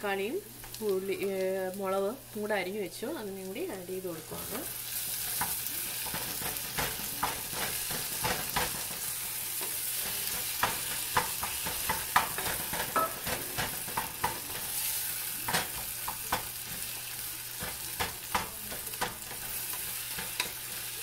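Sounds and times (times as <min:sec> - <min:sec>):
vegetables sizzling in oil: 0:00.0 - 0:21.0
spoon scraping and knocking pan: 0:04.2 - 0:21.0.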